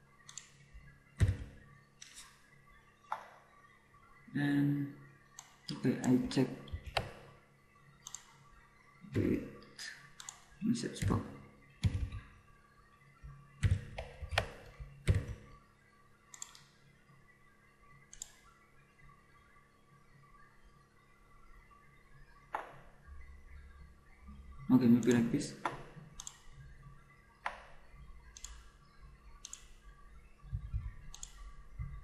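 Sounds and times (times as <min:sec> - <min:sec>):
computer mouse and keyboard clicks: 0:00.2 - 0:00.6, 0:01.2 - 0:02.3, 0:05.4 - 0:07.2, 0:08.0 - 0:08.4, 0:10.2 - 0:11.2, 0:11.8 - 0:12.2, 0:13.6 - 0:15.5, 0:16.3 - 0:16.7, 0:18.1 - 0:18.4, 0:25.0 - 0:26.4, 0:28.4 - 0:28.6, 0:29.4 - 0:29.7, 0:30.5 - 0:31.5.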